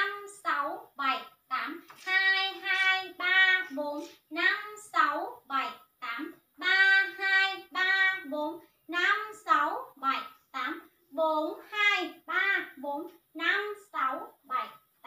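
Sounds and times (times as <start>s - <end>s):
woman chanting counts: 0.0s - 15.0s.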